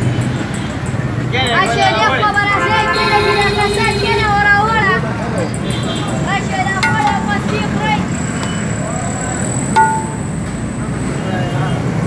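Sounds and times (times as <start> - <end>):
traffic hum: 0.0 - 12.0.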